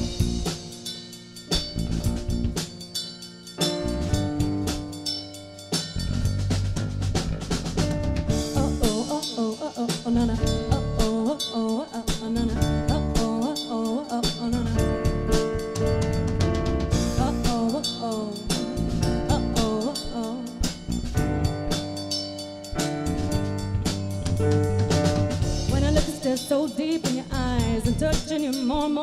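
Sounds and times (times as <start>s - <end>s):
electric bass: 0.0s - 0.8s, 1.5s - 2.8s, 3.6s - 5.0s, 6.0s - 9.0s, 10.2s - 11.1s, 12.4s - 13.3s, 14.6s - 19.9s, 20.6s - 26.2s, 27.3s - 28.2s
drum kit: 0.0s - 29.0s.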